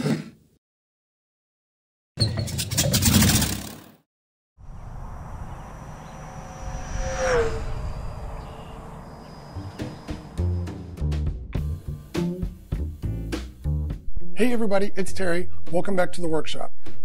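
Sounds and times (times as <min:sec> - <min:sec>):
model jet whine flying past: 0:04.6 - 0:11.0.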